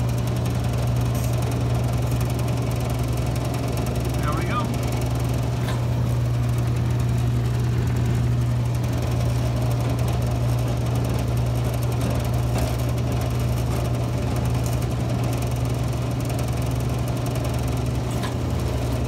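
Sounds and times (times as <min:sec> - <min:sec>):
motor humming: 0:00.0 - 0:19.0.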